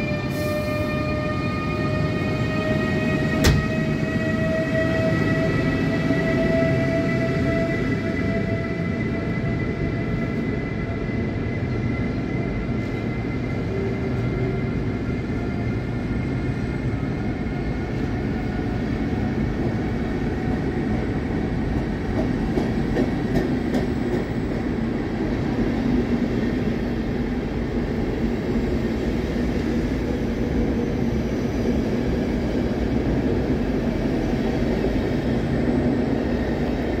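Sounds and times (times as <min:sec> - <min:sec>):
train wheels rumbling on rails: 0:00.0 - 0:37.0.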